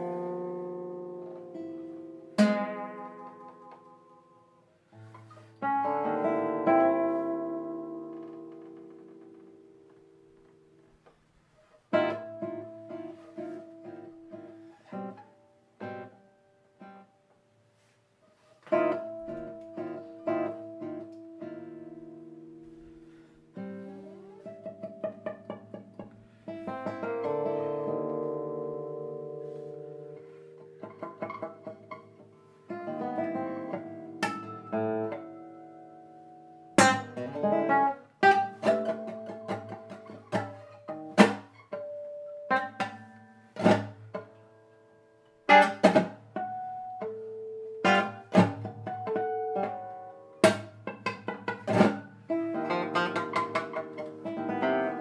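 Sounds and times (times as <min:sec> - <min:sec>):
classical guitar playing: 0:00.0 - 0:55.0.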